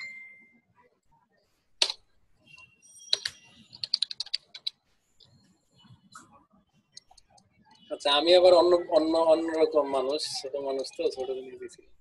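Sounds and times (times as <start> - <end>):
keyboard typing: 1.8 - 5.5, 6.1 - 7.9.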